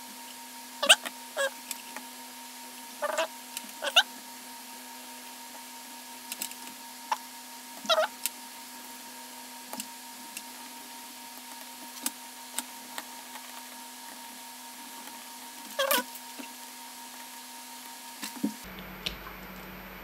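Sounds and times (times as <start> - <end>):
electrical hum: 0.0 - 20.0.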